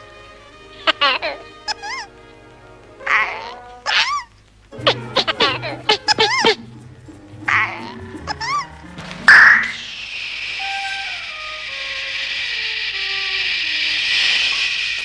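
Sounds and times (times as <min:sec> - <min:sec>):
long steady hiss: 0:00.0 - 0:15.0
falling run of notes: 0:00.7 - 0:14.9
cartoon warbling notes: 0:03.0 - 0:13.3.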